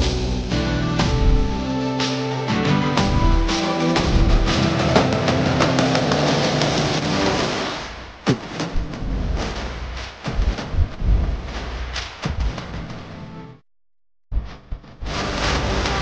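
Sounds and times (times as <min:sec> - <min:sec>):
music with a beat: 0:00.0 - 0:06.8.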